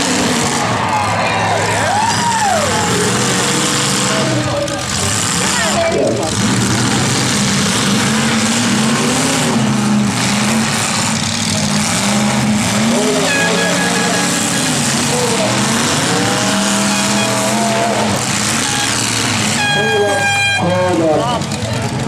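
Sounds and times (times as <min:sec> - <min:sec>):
car engines revving: 0:00.0 - 0:22.0
dense loud noise: 0:00.0 - 0:22.0
car horn: 0:12.9 - 0:15.1, 0:15.7 - 0:21.1.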